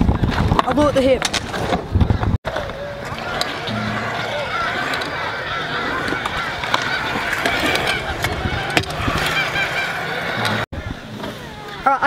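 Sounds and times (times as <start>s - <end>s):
scooter wheels rolling on concrete: 0.0s - 12.0s
scooter clicks and knocks: 2.5s - 10.6s
birds calling: 2.5s - 12.0s.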